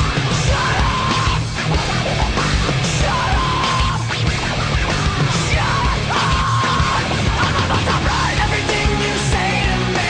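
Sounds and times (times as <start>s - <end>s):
heavy rock music: 0.0s - 10.0s
shouted vocals: 0.2s - 1.4s, 2.8s - 4.1s, 5.3s - 10.0s.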